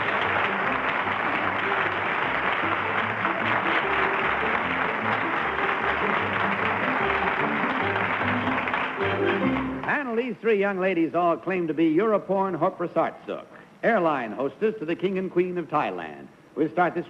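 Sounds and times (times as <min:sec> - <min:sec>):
studio audience applauding: 0:00.0 - 0:10.1.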